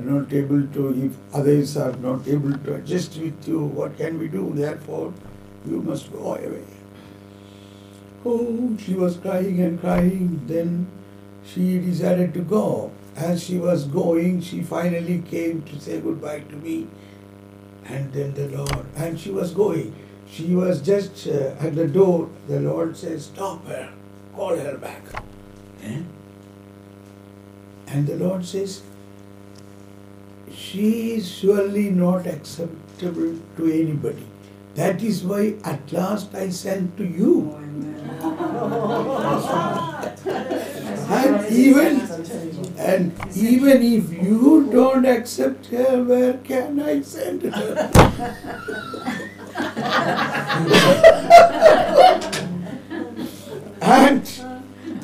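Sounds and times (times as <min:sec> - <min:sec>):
man speaking: 0:00.0 - 0:06.8, 0:08.2 - 0:10.9, 0:11.5 - 0:16.9, 0:17.9 - 0:26.1, 0:27.9 - 0:28.8, 0:30.5 - 0:37.7, 0:40.9 - 0:48.3, 0:53.8 - 0:54.5
electrical mains hum: 0:00.0 - 0:55.0
sharp click: 0:18.6 - 0:19.0, 0:25.1 - 0:25.7, 0:43.2 - 0:43.4, 0:47.9 - 0:48.4
man chuckling and laughing: 0:47.6 - 0:53.6.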